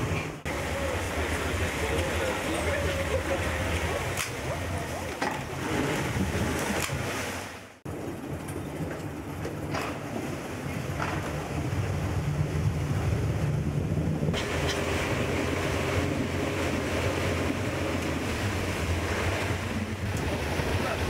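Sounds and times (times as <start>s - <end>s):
water washing: 0.0s - 21.0s
wind buffeting microphone: 1.6s - 7.1s, 7.8s - 21.0s.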